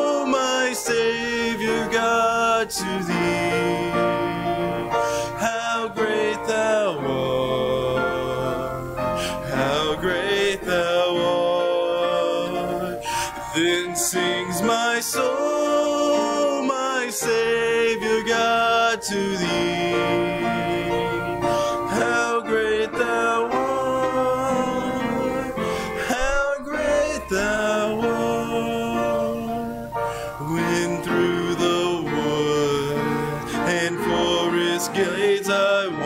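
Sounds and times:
congregation singing a hymn: 0.0 - 36.0
instrumental accompaniment: 0.0 - 36.0
man singing: 0.0 - 36.0.

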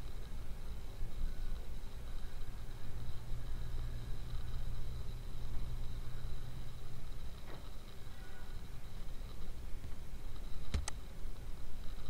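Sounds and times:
faint high-pitched whine: 0.0 - 12.0
light hiss: 0.0 - 12.0
steady low hum: 0.0 - 12.0.

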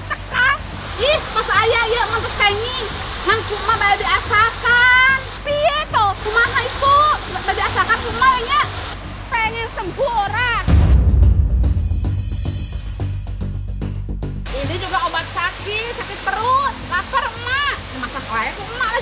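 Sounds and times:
waterfall rushing: 0.0 - 11.0, 14.5 - 19.0
loud deep rumble: 10.6 - 14.6.

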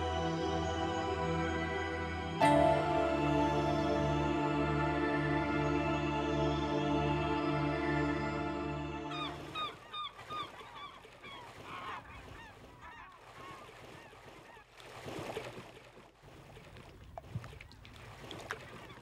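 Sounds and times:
music: 0.0 - 9.6
water splashing: 9.2 - 19.0.

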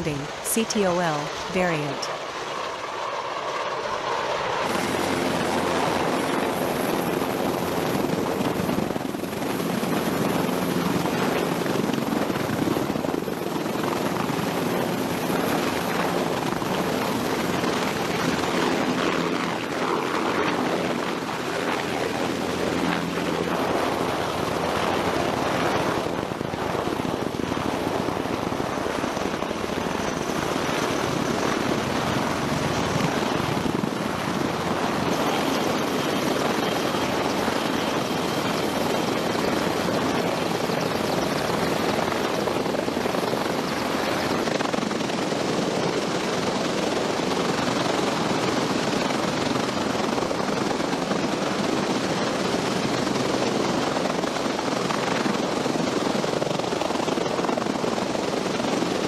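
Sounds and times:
helicopter rotor and turbine: 0.0 - 59.0.

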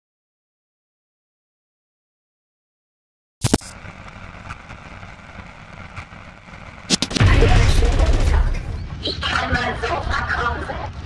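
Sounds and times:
sharp cracks: 3.4 - 8.7
loud low explosion boom: 3.8 - 9.0.

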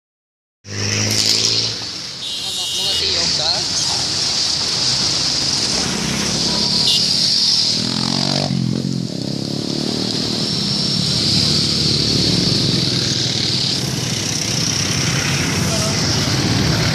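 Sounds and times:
road traffic passing: 0.6 - 16.9
vehicle engine: 0.7 - 16.9.

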